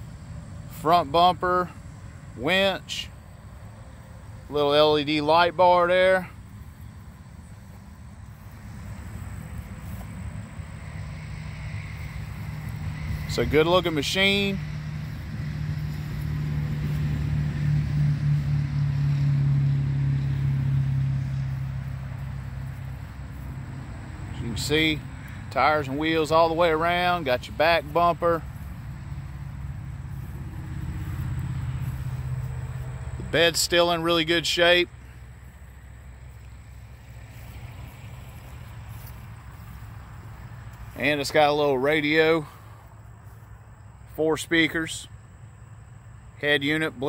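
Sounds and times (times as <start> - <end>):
engine idling: 0.0 - 47.0.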